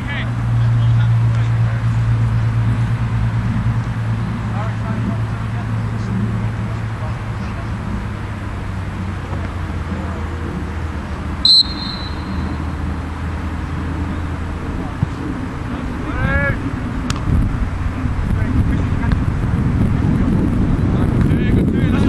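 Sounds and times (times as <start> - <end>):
open-air background noise: 0.0 - 22.0
referee's whistle blast: 11.4 - 12.6.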